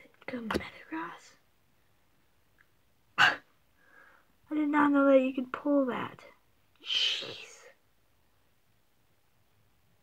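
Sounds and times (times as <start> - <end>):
boy speaking: 0.0 - 1.4, 4.5 - 6.4.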